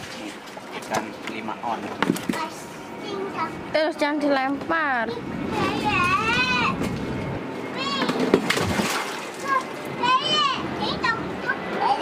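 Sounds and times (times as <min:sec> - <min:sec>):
fish splashing water: 0:08.1 - 0:09.8
children calling out: 0:09.3 - 0:12.0.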